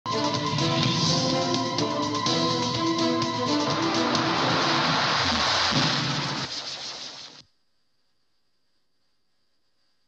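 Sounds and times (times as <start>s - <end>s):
theme music notes: 0.1s - 6.5s
loud dense static hiss: 3.4s - 10.0s.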